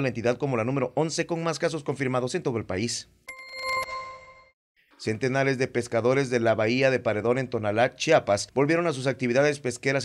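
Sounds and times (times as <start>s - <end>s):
bright ringing tone: 3.3s - 4.6s.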